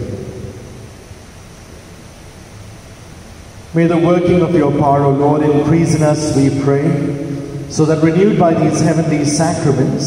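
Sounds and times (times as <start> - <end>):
man speaking: 0.0 - 0.5, 3.7 - 10.0
low room hiss: 0.0 - 10.0.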